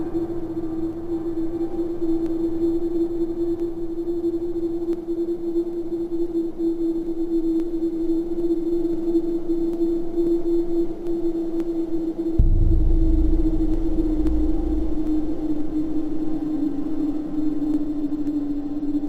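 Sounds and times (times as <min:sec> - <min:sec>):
sustained pure tone drone: 0:00.0 - 0:19.0.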